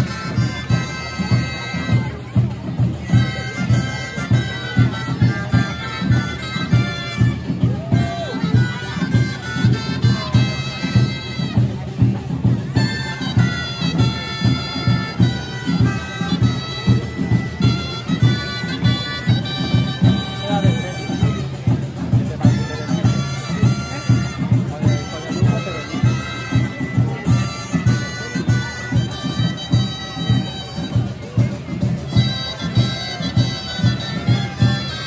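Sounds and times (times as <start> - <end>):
shawms playing a folk melody: 0.0 - 35.0
steady drum beat: 0.0 - 35.0.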